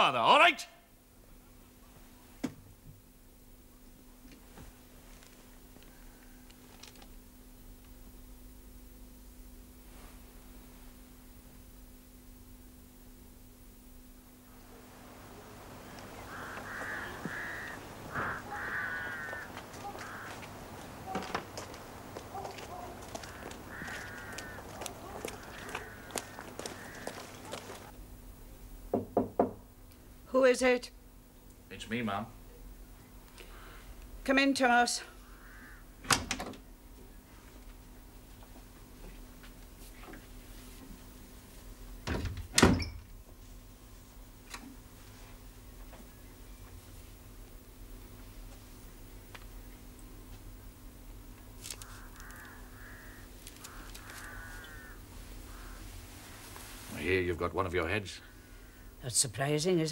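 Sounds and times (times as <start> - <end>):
street sounds: 14.6 - 27.9
bird harsh calls: 15.8 - 27.9, 35.2 - 35.9, 51.8 - 56.0
light footsteps: 15.8 - 27.9
knocks on a door: 28.9 - 29.6.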